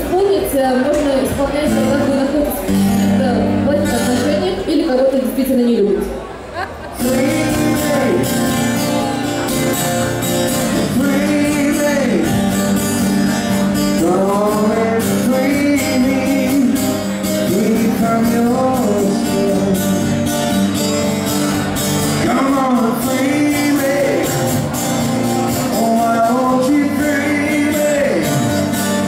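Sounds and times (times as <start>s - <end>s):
acoustic guitar strumming: 0.9s - 4.8s, 6.9s - 29.0s
man singing: 7.0s - 9.5s, 10.5s - 20.3s, 22.1s - 24.8s, 25.5s - 29.0s.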